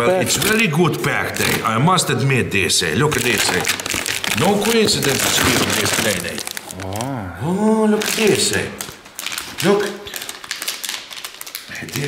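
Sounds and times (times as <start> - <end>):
plastic bag crinkling: 2.9 - 7.2, 7.9 - 12.0.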